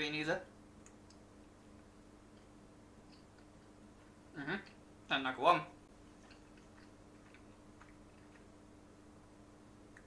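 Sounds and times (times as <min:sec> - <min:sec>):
faint steady hum: 0:00.0 - 0:10.0.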